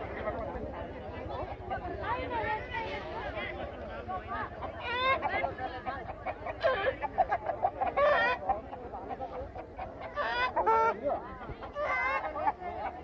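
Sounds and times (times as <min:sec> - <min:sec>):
crowd murmur: 0:00.0 - 0:13.0
rooster clucking: 0:04.5 - 0:13.0.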